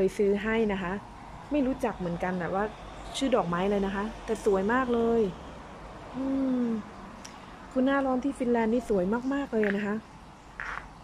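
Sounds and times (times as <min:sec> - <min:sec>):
woman speaking: 0:00.0 - 0:05.4, 0:06.2 - 0:06.9, 0:07.7 - 0:10.0
woman humming: 0:06.2 - 0:06.9.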